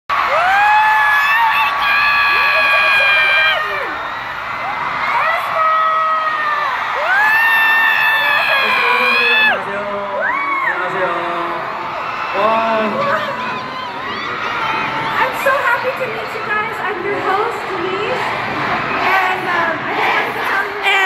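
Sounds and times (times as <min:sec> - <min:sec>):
crowd screaming: 0:00.1 - 0:21.0.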